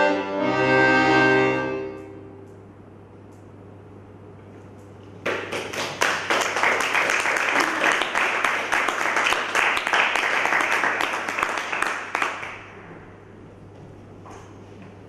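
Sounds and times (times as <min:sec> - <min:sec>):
audience applause: 0:05.2 - 0:12.8.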